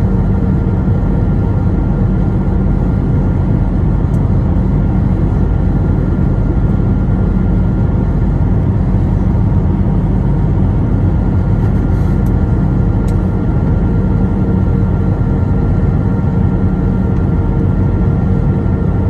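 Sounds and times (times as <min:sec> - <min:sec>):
airplane cabin drone: 0:00.0 - 0:19.0.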